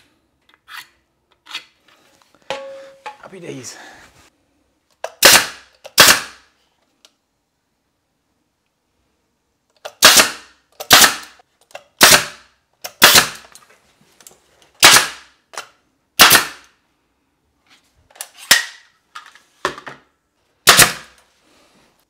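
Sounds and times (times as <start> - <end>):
pneumatic nailer firing: 5.1 - 6.4, 9.9 - 11.4, 12.0 - 13.5, 14.8 - 15.3, 16.2 - 16.7, 20.6 - 21.2.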